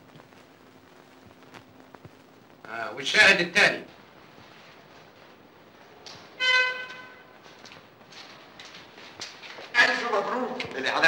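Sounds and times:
horn-like toot: 6.4 - 7.4.

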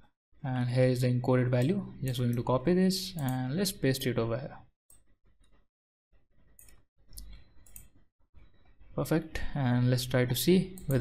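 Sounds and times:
mouse and keyboard clicks: 6.6 - 8.0.

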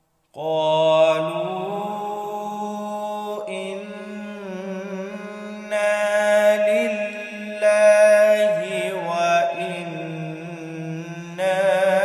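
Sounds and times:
man reciting melodically: 0.4 - 12.0.

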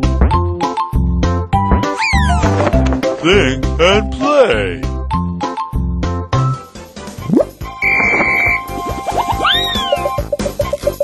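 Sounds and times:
children's background music: 0.0 - 11.0
high whistle-like tone: 7.8 - 8.7.

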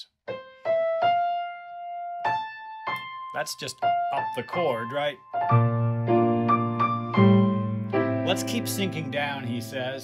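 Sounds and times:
grand piano notes: 0.4 - 10.0.

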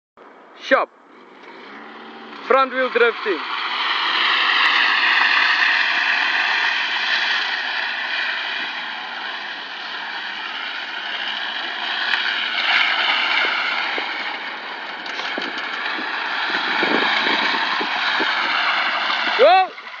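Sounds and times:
tyres squealing on asphalt: 1.2 - 20.0.

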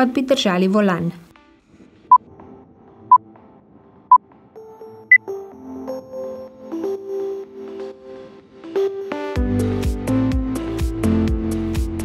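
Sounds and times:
soft electronic background music: 0.0 - 12.0.

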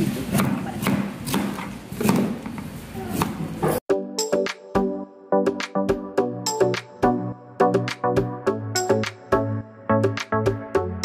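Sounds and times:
knife chopping on plastic board: 0.3 - 3.4.

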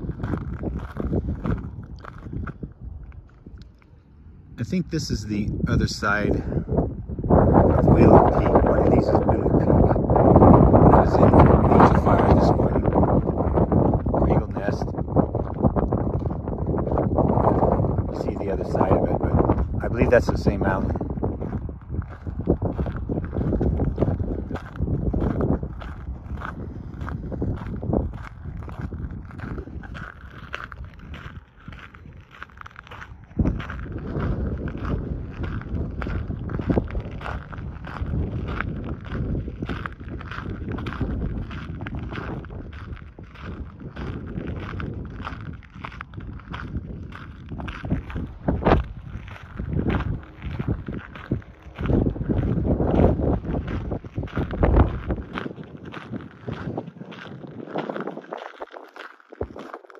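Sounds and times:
footsteps crunching on gravel: 0.0 - 59.9
wind buffeting microphone: 0.0 - 59.9.

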